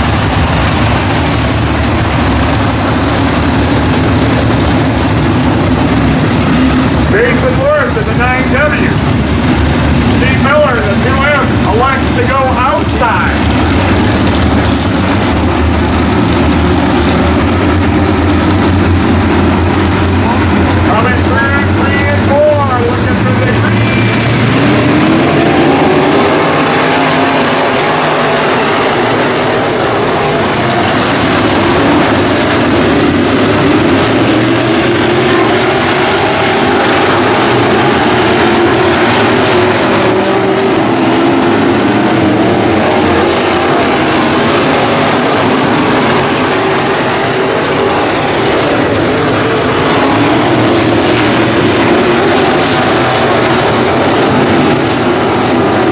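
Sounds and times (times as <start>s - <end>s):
race car engines: 0.0s - 55.9s.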